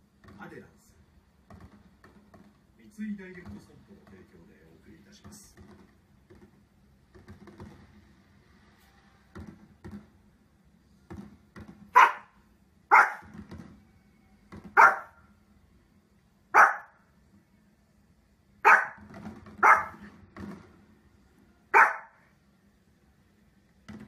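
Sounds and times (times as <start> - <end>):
dog barking: 11.9 - 13.3, 14.7 - 15.2, 16.5 - 17.0, 18.6 - 20.1, 21.7 - 22.2.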